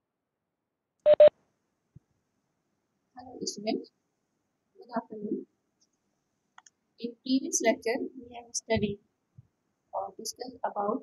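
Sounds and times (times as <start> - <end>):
short electronic beeps: 1.1 - 1.3.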